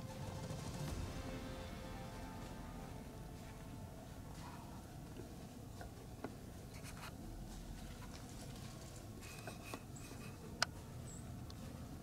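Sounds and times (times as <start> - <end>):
low outdoor rumble: 0.0 - 12.0
faint rustling and scratching: 4.3 - 11.0.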